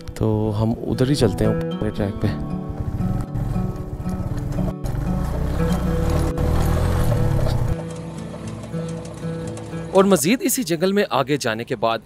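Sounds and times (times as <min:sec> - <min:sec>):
background music: 0:00.0 - 0:12.0
motorcycle engine pulsing: 0:02.5 - 0:10.4.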